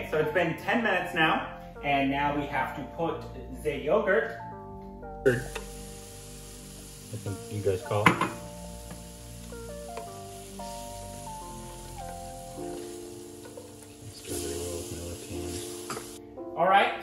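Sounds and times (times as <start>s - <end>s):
background music with held notes: 0.0s - 17.0s
masala sizzling in a pan: 5.3s - 16.2s.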